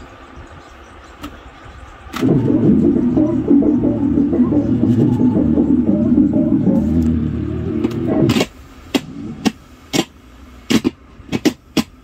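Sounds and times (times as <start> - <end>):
tape recorder running: 1.2 - 10.1.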